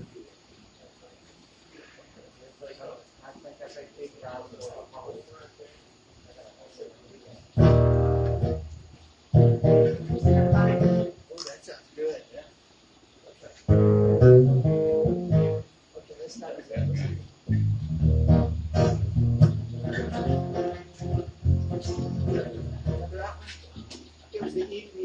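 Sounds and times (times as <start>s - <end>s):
low bass notes: 7.6s - 11.1s, 13.7s - 15.7s, 16.7s - 24.0s
acoustic guitars strummed: 7.6s - 11.2s, 13.7s - 15.7s, 16.8s - 24.6s.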